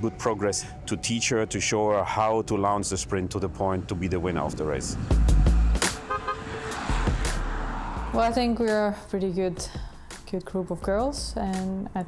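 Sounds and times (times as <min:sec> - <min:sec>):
car driving by: 0:03.4 - 0:09.2
car horn toot: 0:06.0 - 0:06.7.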